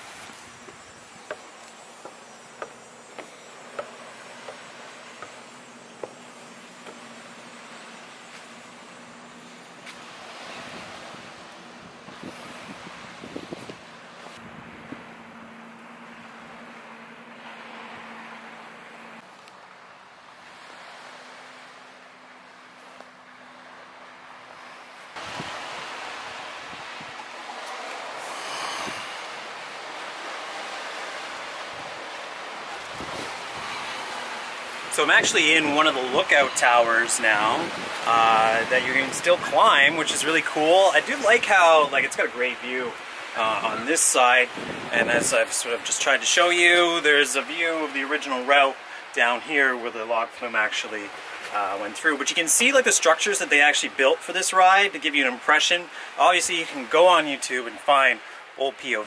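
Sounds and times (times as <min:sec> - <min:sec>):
distant traffic: 0:00.0 - 0:57.3
wind: 0:00.0 - 0:59.0
footsteps on wooden boards: 0:00.1 - 0:07.4.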